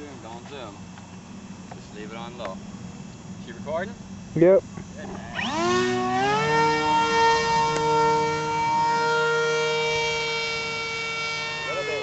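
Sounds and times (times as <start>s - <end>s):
electric motor high-pitched whine: 0.0s - 12.0s.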